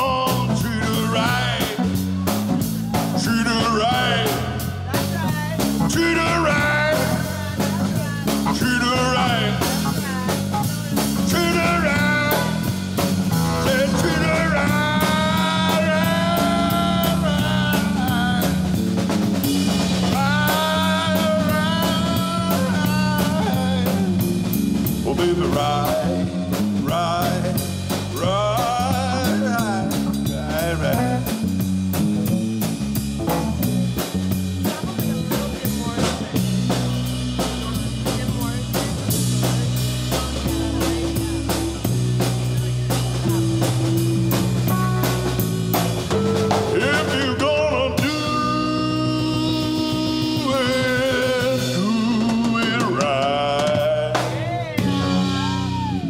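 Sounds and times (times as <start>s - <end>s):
blues-rock band playing: 0.0s - 56.0s
drum kit steady beat: 0.0s - 56.0s
electric guitar lead line bending: 0.0s - 56.0s
heavy low bass notes: 0.0s - 56.0s.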